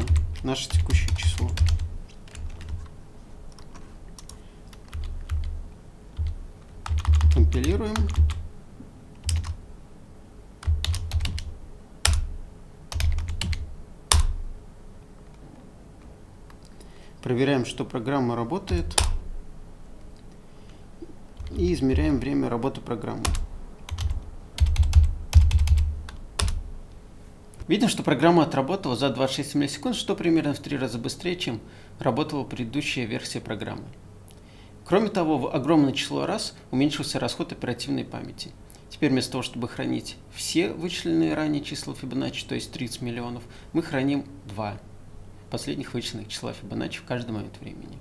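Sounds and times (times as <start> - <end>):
computer keyboard typing: 0.0 - 2.9, 3.5 - 5.6, 6.2 - 8.5, 9.2 - 9.6, 10.6 - 12.3, 12.9 - 14.4, 23.2 - 26.6.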